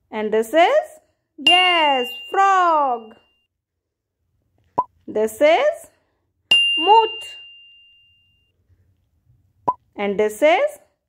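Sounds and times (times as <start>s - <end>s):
bell-like chime ringing: 1.5s - 3.5s, 6.5s - 8.5s.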